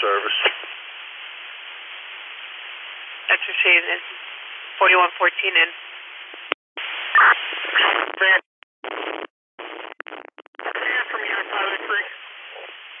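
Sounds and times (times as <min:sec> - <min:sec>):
radio voice transmissions: 0:00.0 - 0:00.7, 0:10.6 - 0:12.8
radio static hiss: 0:00.0 - 0:13.0.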